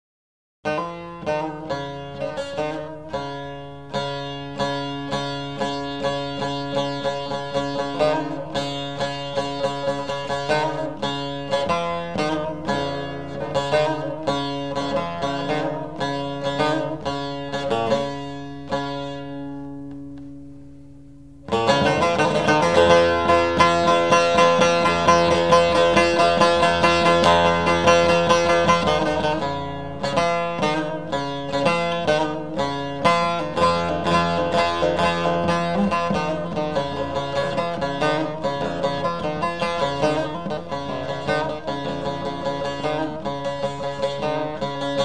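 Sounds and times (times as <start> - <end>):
plucked lute melody: 0.7 - 45.0.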